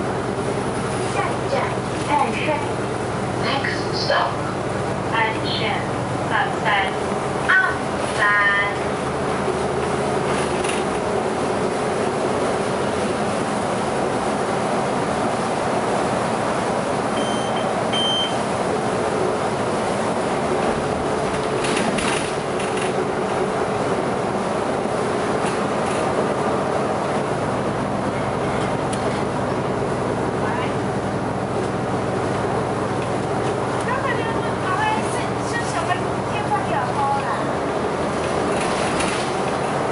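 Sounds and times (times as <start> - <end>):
bus engine and road noise: 0.0 - 39.9.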